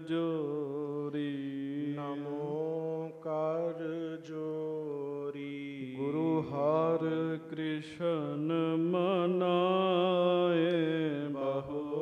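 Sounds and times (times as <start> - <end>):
man chanting into microphone: 0.0 - 12.0.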